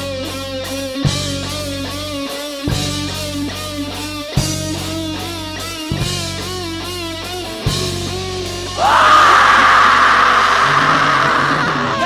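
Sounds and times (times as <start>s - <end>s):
live rock band: 0.0s - 12.0s
loud rough scream: 8.8s - 12.0s.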